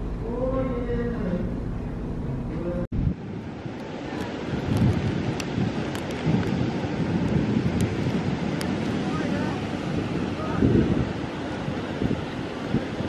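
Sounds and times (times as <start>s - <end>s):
ocean surf washing: 0.0s - 13.0s
wind buffeting microphone: 0.0s - 13.0s.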